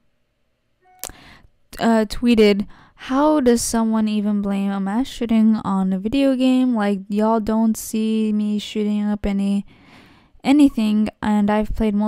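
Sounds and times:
breath at microphone: 1.1 - 1.5, 9.7 - 10.4.

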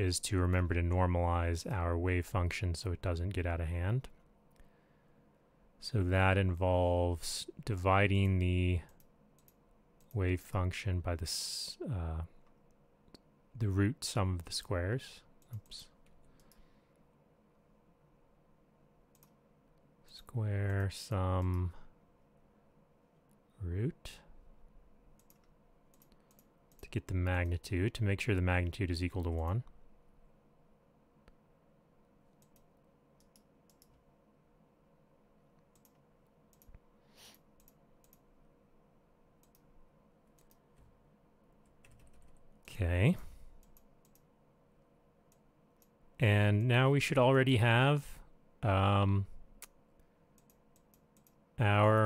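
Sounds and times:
faint hum: 0.0 - 52.0
computer mouse clicks: 8.2 - 10.2, 15.4 - 16.7, 19.1 - 19.4, 25.2 - 27.6, 32.3 - 34.0, 35.6 - 38.3, 39.4 - 39.7, 40.3 - 40.9, 43.6 - 44.3, 49.6 - 51.4
short breathy hiss: 37.0 - 37.5.

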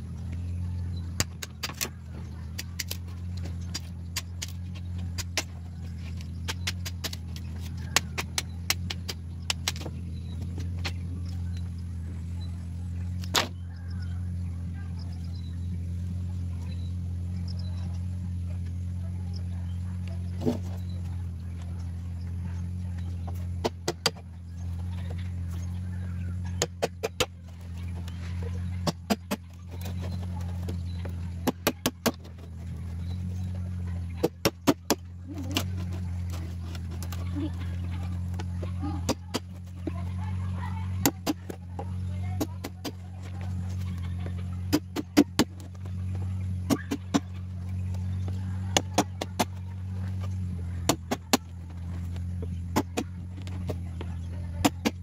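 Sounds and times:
low hum: 0.0 - 55.0.

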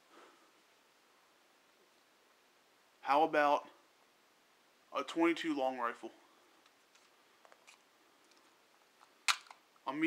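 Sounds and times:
man speaking: 3.0 - 3.8, 4.9 - 6.2.

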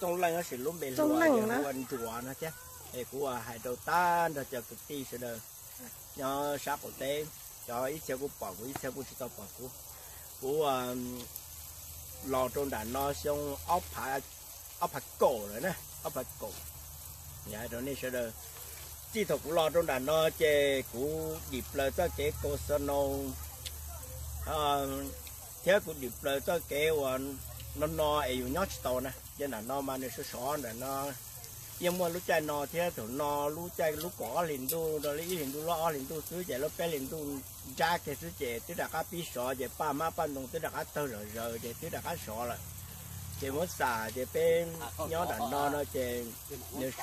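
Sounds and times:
man speaking: 0.0 - 5.4, 6.1 - 9.8, 10.4 - 11.3, 12.2 - 14.2, 14.8 - 16.6, 17.4 - 18.4, 19.1 - 23.4, 24.4 - 31.2, 31.8 - 42.6, 43.4 - 47.0
faint background hiss: 0.0 - 47.0.

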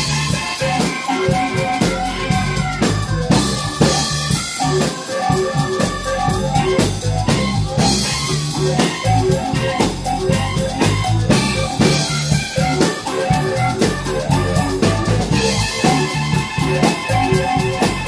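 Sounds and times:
drum kit beat: 0.0 - 18.0
guitar: 0.0 - 18.0
sustained pitched instruments: 0.0 - 18.0.

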